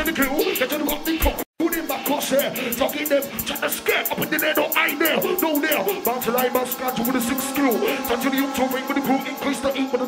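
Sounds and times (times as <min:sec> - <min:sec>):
drum and bass music: 0:00.0 - 0:10.0
fast hi-hats: 0:00.0 - 0:10.0
person rapping over a beat: 0:00.0 - 0:10.0.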